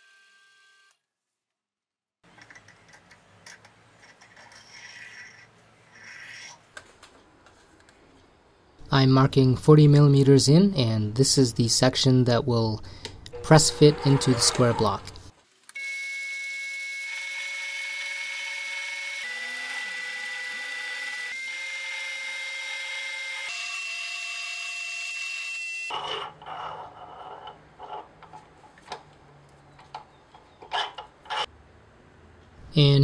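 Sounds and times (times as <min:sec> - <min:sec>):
low hum: 0:12.8 - 0:15.3
lathe whining: 0:13.3 - 0:15.3.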